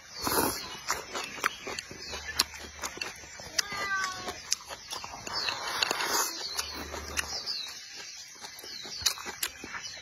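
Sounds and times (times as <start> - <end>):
chewing shrimp: 0.0 - 10.0
wet mouth clicks and smacks: 8.4 - 9.8.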